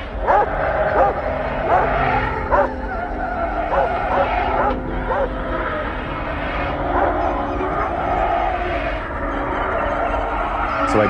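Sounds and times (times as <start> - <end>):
low rumble: 0.0 - 11.0
dog growling: 0.2 - 3.1, 3.7 - 5.8
dog barking and whining: 0.2 - 5.4.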